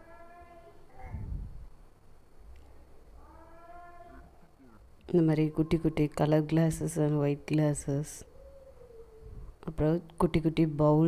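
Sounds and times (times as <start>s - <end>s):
faint drawn-out cry: 3.2s - 4.8s.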